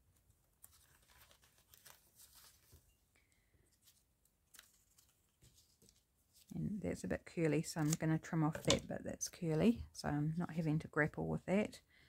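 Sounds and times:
paper card rustling: 0.5 - 2.9, 3.7 - 6.5.

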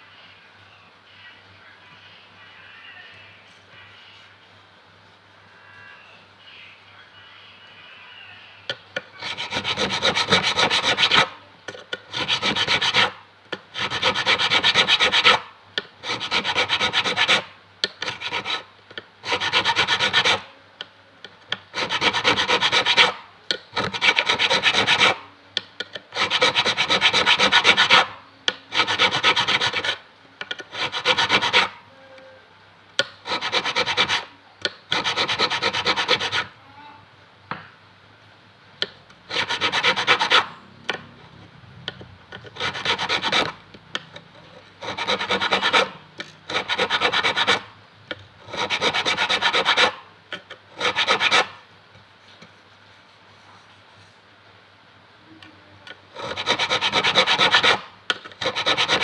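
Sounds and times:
file rasping on metal fret: 9.2 - 15.4, 16.0 - 20.4, 21.7 - 23.2, 23.8 - 25.2, 26.1 - 28.1, 28.7 - 30.0, 30.6 - 31.8, 33.2 - 34.3, 34.9 - 36.5, 39.3 - 40.5, 42.3 - 43.6, 44.6 - 47.7, 48.4 - 51.5, 56.2 - 59.0.

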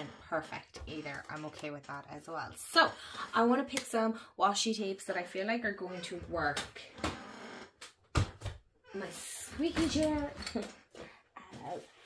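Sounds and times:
chair squeaking: 0.0 - 3.2, 5.6 - 10.9.

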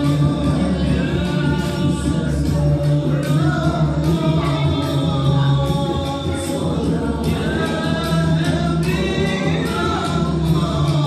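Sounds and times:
karaoke backing track: 0.0 - 11.0
men singing into microphones: 0.0 - 11.0.

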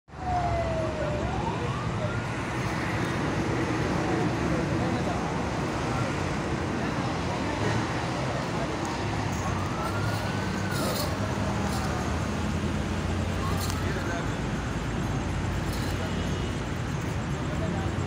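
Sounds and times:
indistinct voices: 3.8 - 18.0.

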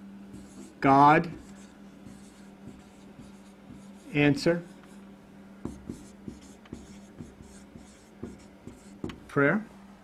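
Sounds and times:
faint steady hum: 0.0 - 10.0
marker writing on whiteboard: 0.3 - 9.4.

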